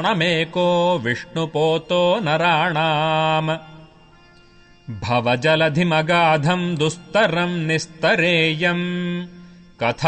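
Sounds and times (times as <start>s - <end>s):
man chanting verses: 4.9s - 10.0s.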